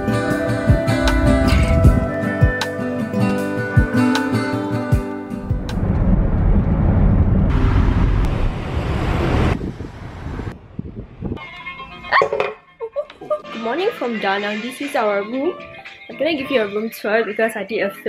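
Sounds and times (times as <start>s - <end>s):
guitar music: 0.0s - 5.7s.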